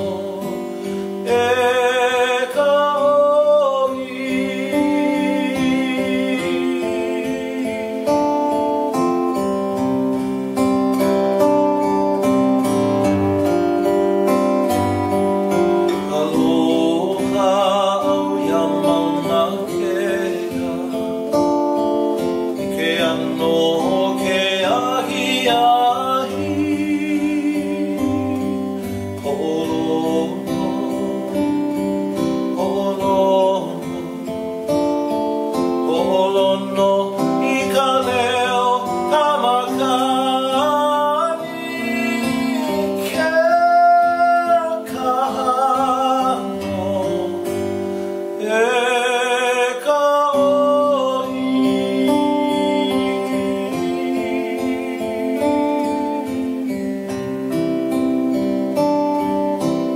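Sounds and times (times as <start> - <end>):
acoustic guitar strumming: 0.0 - 59.9
man singing with vibrato: 0.0 - 59.9.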